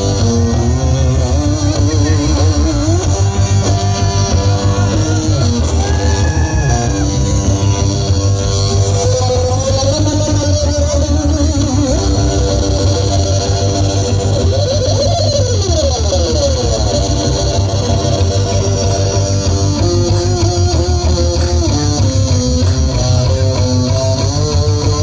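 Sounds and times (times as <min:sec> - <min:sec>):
amplified string instrument: 0:00.0 - 0:25.0
heavy pulsing bass: 0:00.0 - 0:25.0.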